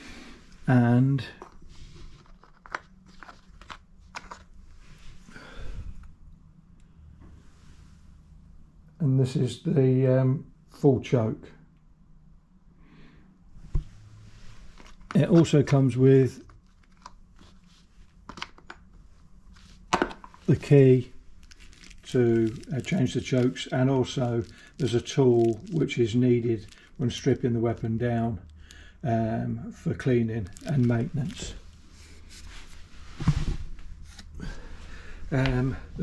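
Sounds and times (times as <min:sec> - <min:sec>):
handling rustle: 0:01.3 - 0:05.3, 0:13.6 - 0:18.6, 0:19.4 - 0:28.6, 0:30.0 - 0:34.7.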